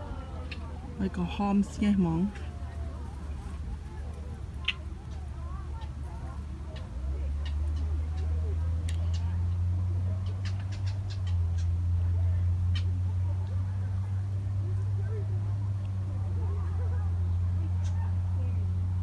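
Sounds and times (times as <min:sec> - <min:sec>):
faint voices: 0:00.0 - 0:19.0
steady low hum: 0:00.0 - 0:19.0.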